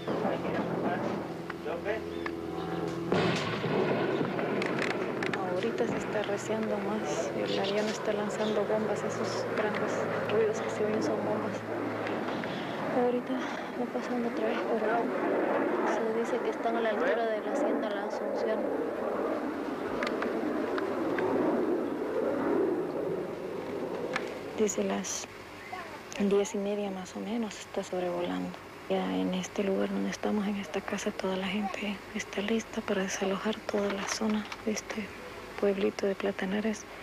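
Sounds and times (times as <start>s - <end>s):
rolling rumble: 0.0s - 25.2s
aircraft engine drone: 0.0s - 26.1s
sharp cracks: 2.2s - 7.2s, 19.8s - 21.4s
bomb explosion boom: 3.1s - 6.5s.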